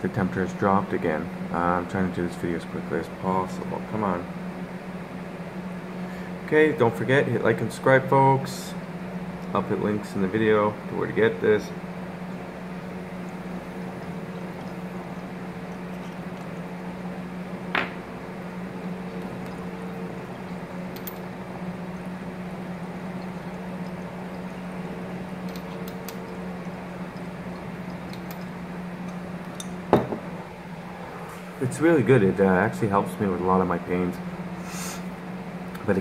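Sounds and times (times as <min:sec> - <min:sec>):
steady low hum: 0:00.0 - 0:36.0
water bubbling in a glass pipe: 0:12.0 - 0:29.9.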